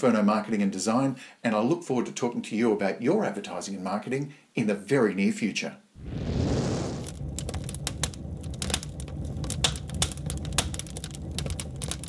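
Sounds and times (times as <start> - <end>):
whoosh: 6.0 - 7.8
low rumble: 6.0 - 10.5
crackling clicks: 6.1 - 12.0.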